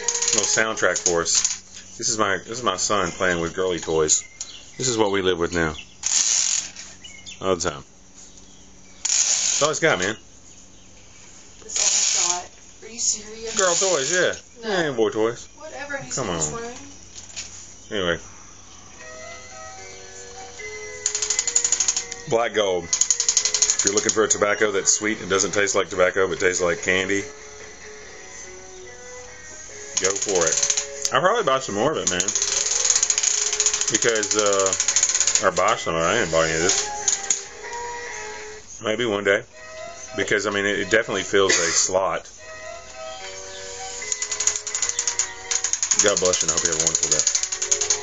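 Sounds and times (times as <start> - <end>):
rapid mechanical clicking rattle: 0.0 - 1.6, 21.0 - 25.6, 29.9 - 31.2, 31.9 - 37.8, 44.0 - 48.0
faint steady tones: 0.0 - 48.0
electronic toy tune: 19.0 - 38.6, 39.5 - 41.8, 42.4 - 48.0.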